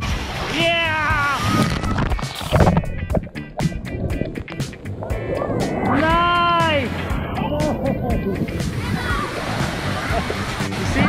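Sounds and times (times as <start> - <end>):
splashing rushing water: 0.0 - 11.0
background music: 0.8 - 11.0
voices: 5.2 - 11.0.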